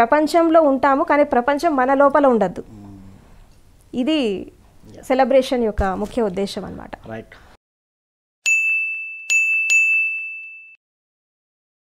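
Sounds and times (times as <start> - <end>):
bell-like ding: 8.4 - 10.8.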